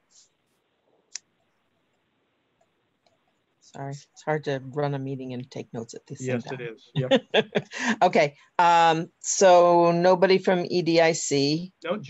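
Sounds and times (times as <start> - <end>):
soft hiss: 0.0 - 9.7.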